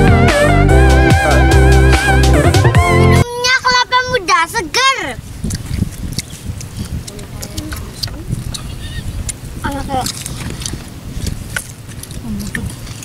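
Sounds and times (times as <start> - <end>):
casual voices: 3.1 - 12.9.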